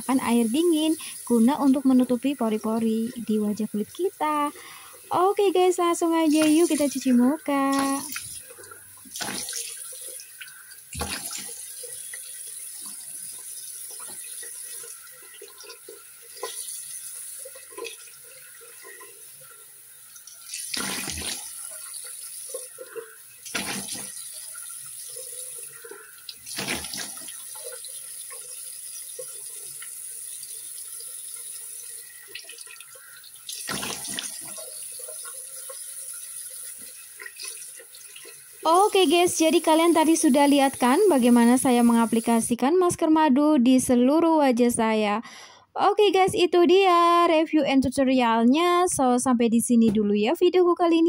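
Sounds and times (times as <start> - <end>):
tap water running into sink: 0.0 - 42.6
water splashing on face: 6.2 - 11.7, 20.5 - 22.6, 23.4 - 24.5, 26.3 - 28.4, 32.3 - 35.2.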